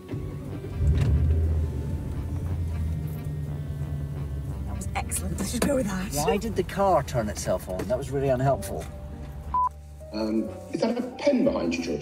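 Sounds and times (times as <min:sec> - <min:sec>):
car engine idling: 0:00.0 - 0:10.1.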